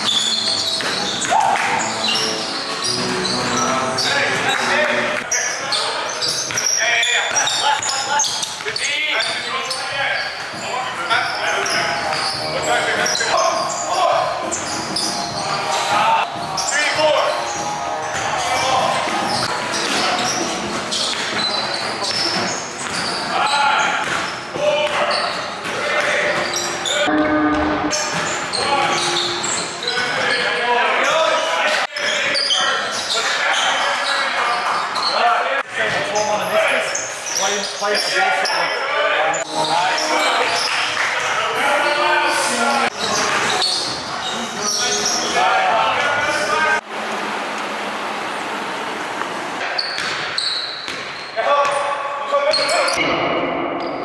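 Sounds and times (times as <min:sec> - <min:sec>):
basketball bouncing on court: 0:00.0 - 0:01.4, 0:19.0 - 0:23.3, 0:23.9 - 0:26.6, 0:49.2 - 0:51.8.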